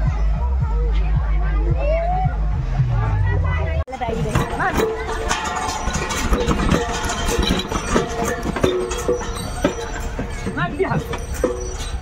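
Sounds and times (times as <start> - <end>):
people calling and chatting: 0.0 - 12.0.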